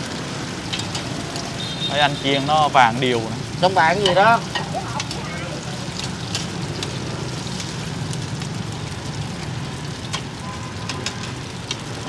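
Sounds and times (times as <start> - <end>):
cake sizzling in hot oil: 0.0 - 12.0.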